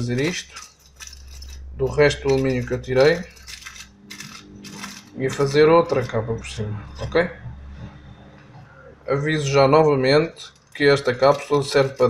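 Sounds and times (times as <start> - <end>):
aluminium foil crinkling: 0.0 - 6.1, 10.4 - 12.0.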